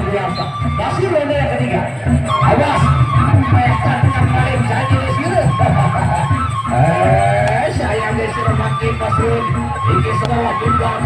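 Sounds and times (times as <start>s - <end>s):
steady drum beat: 0.0s - 11.0s.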